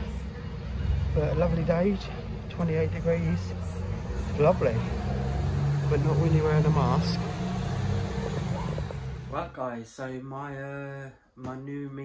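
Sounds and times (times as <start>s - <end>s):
traffic engine rumble: 0.0s - 9.6s.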